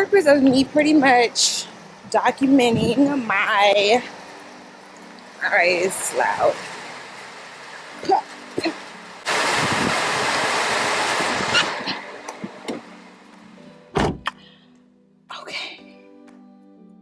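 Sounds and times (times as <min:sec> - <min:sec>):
rain noise: 0:00.0 - 0:13.6
car door shutting: 0:11.5 - 0:12.9, 0:13.9 - 0:14.4.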